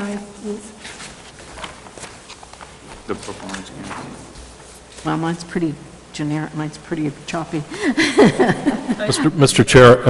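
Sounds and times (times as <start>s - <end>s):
papers rustling: 0.0s - 5.2s.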